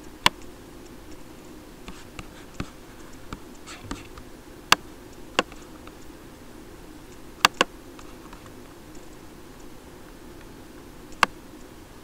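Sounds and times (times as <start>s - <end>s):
steady low hum: 0.0s - 12.0s
computer mouse clicks: 0.2s - 1.2s, 1.9s - 6.1s, 7.1s - 9.7s, 11.1s - 11.7s
mouse rubbing on desk: 1.9s - 4.2s.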